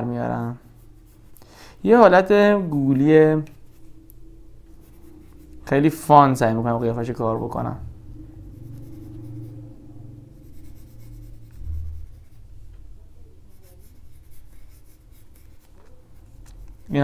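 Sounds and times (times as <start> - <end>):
low steady hum: 0.0 - 17.0
pencil scratching on paper: 0.5 - 1.4, 2.8 - 4.0, 4.7 - 5.9, 10.4 - 12.5, 13.4 - 17.0.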